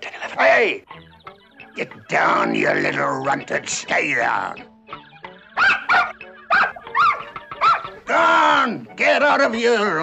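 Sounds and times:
quiet background music: 0:00.0 - 0:10.0
puppy yapping: 0:05.6 - 0:08.0.

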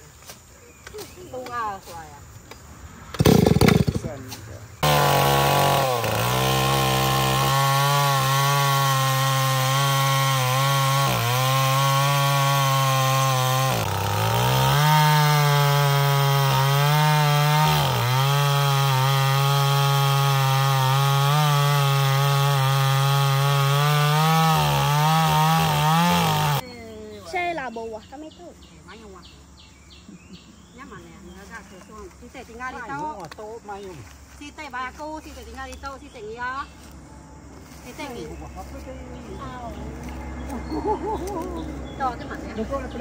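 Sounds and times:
chainsaw cutting wood: 0:03.1 - 0:04.2, 0:04.8 - 0:26.6.

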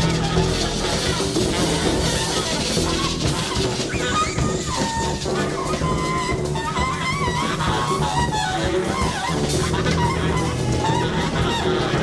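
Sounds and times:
bass: 0:00.0 - 0:12.0
drums: 0:00.0 - 0:12.0
horn playing sliding phrases: 0:00.0 - 0:12.0.

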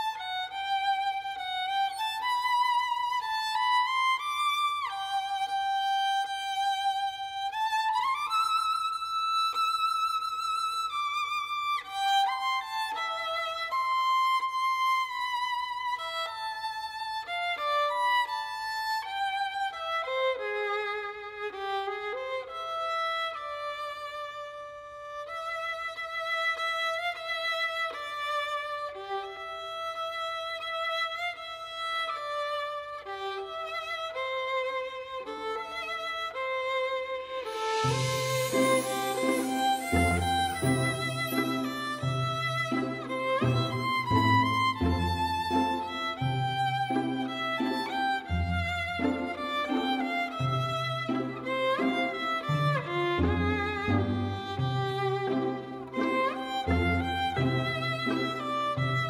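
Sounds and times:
violin playing a waltz: 0:00.0 - 0:59.0.

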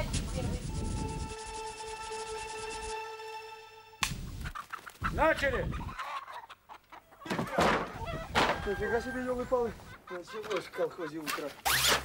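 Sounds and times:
chicken squawking: 0:04.4 - 0:11.9.

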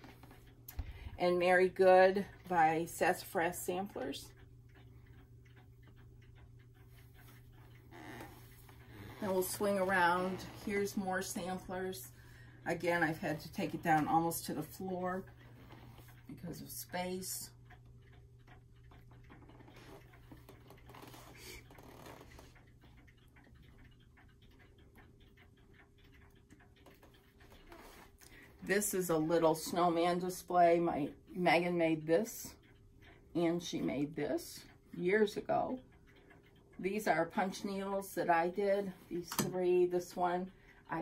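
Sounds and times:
clock ticking: 0:00.0 - 0:41.0
low steady hum: 0:00.0 - 0:41.0.

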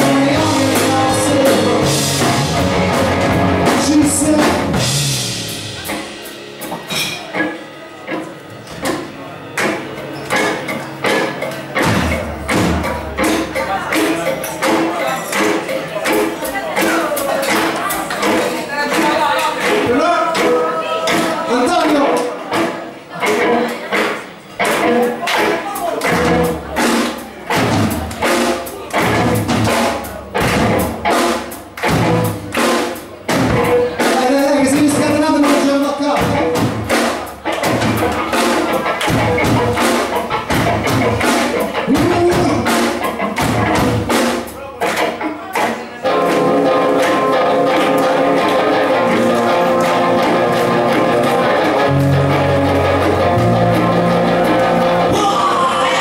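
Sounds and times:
drum hits steady beat: 0:00.0 - 0:56.0
live rock band: 0:00.0 - 0:56.0
soft guitar: 0:00.0 - 0:56.0.

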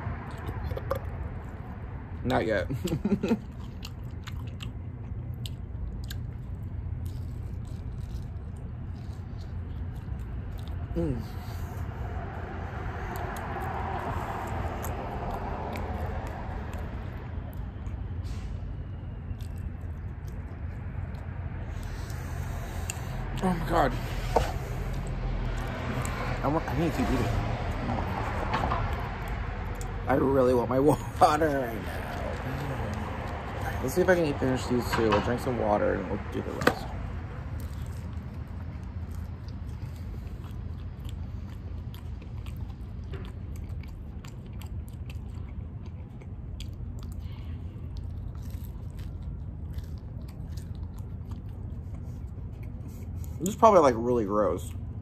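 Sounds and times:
low outdoor rumble: 0:00.0 - 0:55.0
person chewing crunchy pizza: 0:00.1 - 0:35.0, 0:36.3 - 0:55.0.

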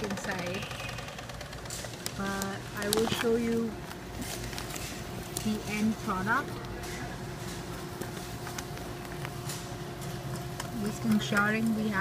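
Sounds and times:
machine hum with two tones: 0:00.0 - 0:12.0
paper bag rustling and clicking: 0:00.0 - 0:12.0.

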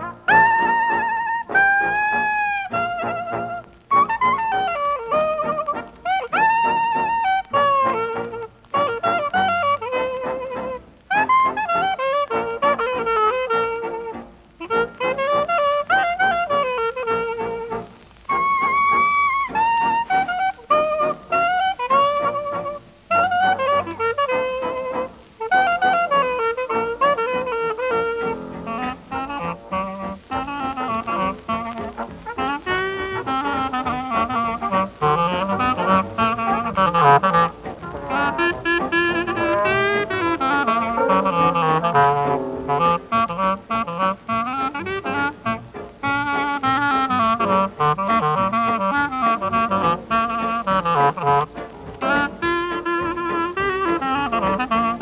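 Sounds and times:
jazz band playing: 0:00.0 - 0:55.0.

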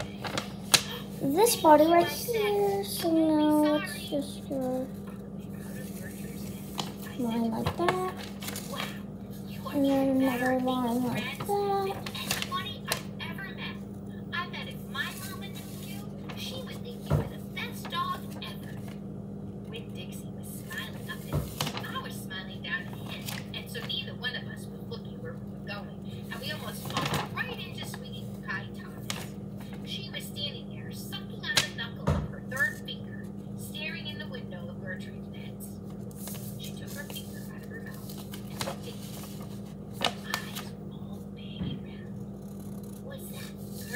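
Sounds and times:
steady low hum: 0:00.0 - 0:43.9.

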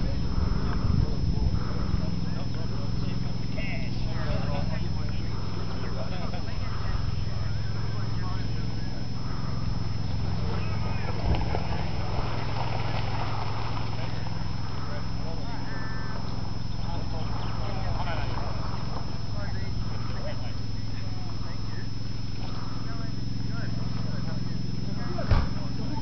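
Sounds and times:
distant indistinct voices: 0:00.0 - 0:26.0
steady low hum: 0:00.0 - 0:26.0.

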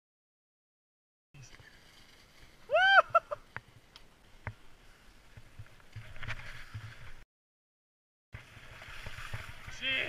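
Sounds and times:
skis sliding over snow: 0:01.4 - 0:07.2.

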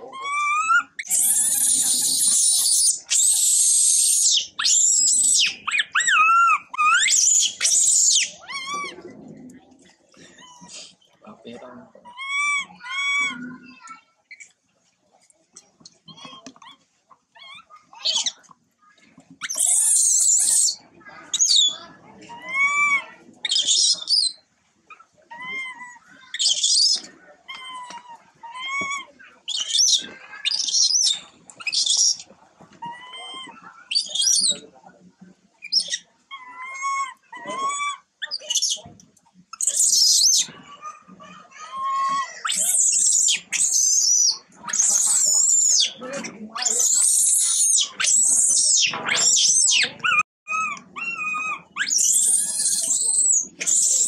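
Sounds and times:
infant monkey crying: 0:00.0 - 0:09.0, 0:12.0 - 0:13.4, 0:21.4 - 0:24.3, 0:25.3 - 0:32.2, 0:35.8 - 0:38.8, 0:41.6 - 0:46.0, 0:46.6 - 0:54.0
monkey harsh screams: 0:00.2 - 0:08.9, 0:12.1 - 0:13.4, 0:19.4 - 0:21.8, 0:22.4 - 0:24.4, 0:25.4 - 0:32.2, 0:32.9 - 0:34.6, 0:39.6 - 0:40.5, 0:41.6 - 0:46.0, 0:46.6 - 0:54.0.

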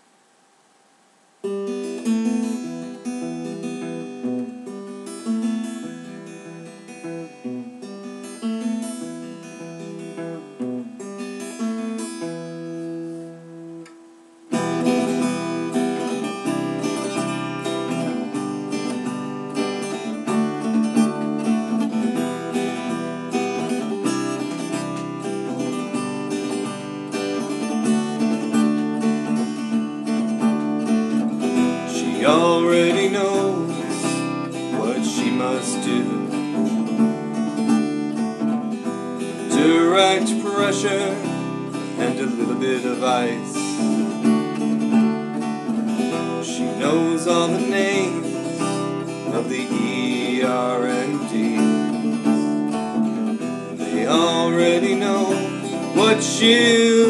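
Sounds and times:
acoustic guitar playing: 0:01.4 - 0:57.0.

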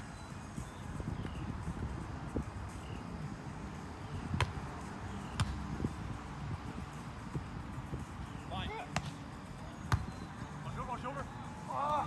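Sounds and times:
hands slapping a volleyball: 0:09.0 - 0:09.2.

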